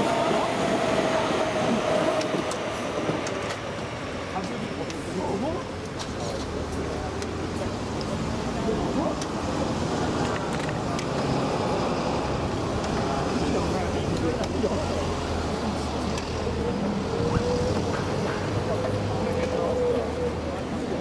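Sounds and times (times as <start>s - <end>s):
electric train rumbling: 0.0s - 21.0s
street traffic noise: 0.0s - 21.0s.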